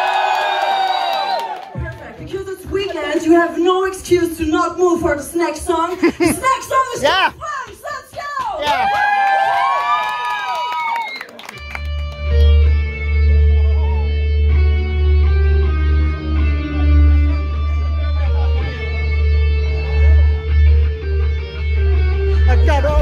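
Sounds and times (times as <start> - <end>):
live rock band playing: 11.6 - 23.0
sustained guitar notes: 11.8 - 23.0
heavy low bass: 12.1 - 23.0.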